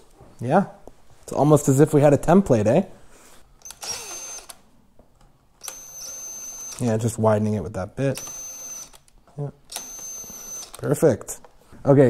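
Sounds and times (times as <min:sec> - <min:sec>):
power drill whining: 0:03.6 - 0:04.6, 0:05.6 - 0:06.8, 0:08.2 - 0:09.1, 0:09.7 - 0:10.8.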